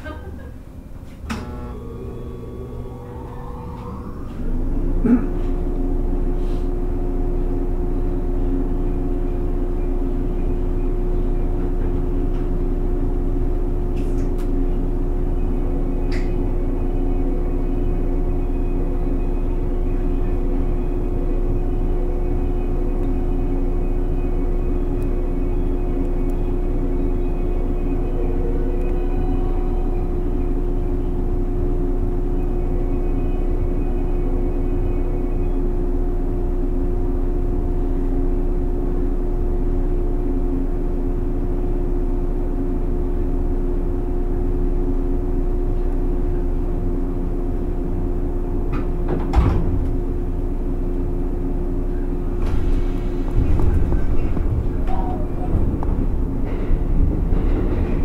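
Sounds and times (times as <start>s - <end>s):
train equipment humming: 0.0s - 58.0s.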